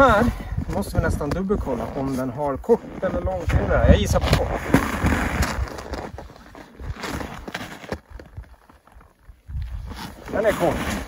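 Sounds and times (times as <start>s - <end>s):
footsteps crunching in snow: 1.3s - 11.0s.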